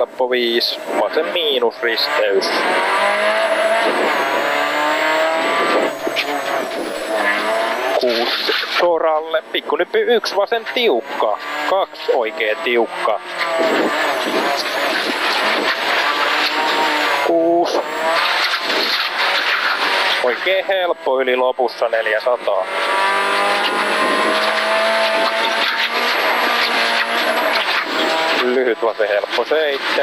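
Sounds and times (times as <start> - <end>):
gravel and tyre noise: 0.0 - 30.0
rally car engine revving: 0.0 - 30.0.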